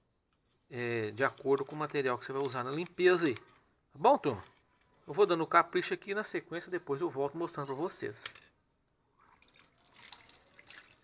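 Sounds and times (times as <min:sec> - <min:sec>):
water dripping and splashing: 0:09.2 - 0:11.0.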